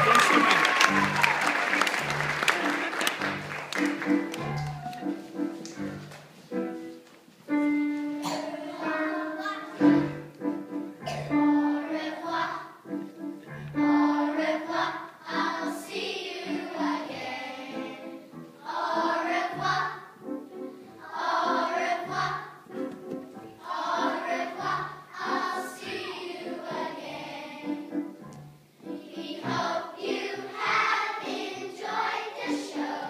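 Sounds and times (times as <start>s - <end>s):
children singing together: 8.1s - 28.2s, 28.8s - 33.0s.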